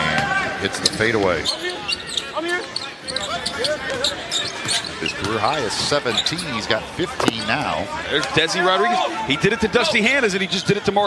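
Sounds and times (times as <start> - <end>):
arena crowd noise: 0.0 - 11.0
scattered voices: 0.0 - 11.0.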